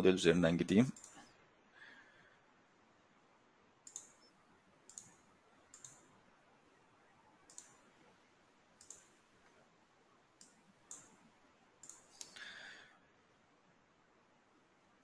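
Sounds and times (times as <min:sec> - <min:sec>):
computer mouse clicks: 0:01.0 - 0:01.3, 0:03.8 - 0:06.1, 0:07.5 - 0:07.9, 0:08.8 - 0:09.6, 0:10.4 - 0:11.2, 0:11.8 - 0:12.5.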